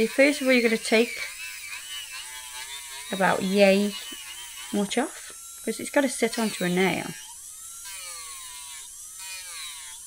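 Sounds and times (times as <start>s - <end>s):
electric nail file motor whine: 0.0s - 10.0s.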